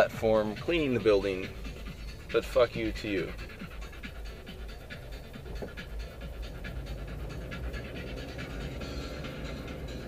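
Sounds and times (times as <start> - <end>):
engine and road rumble: 0.0 - 10.0
fast irregular rasping pulse: 0.6 - 10.0.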